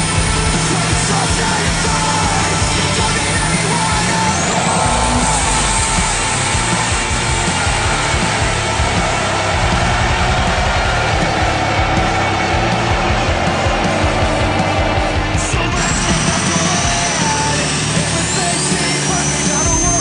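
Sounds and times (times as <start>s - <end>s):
diesel engine at full throttle: 0.0s - 20.0s
music playing: 0.0s - 20.0s.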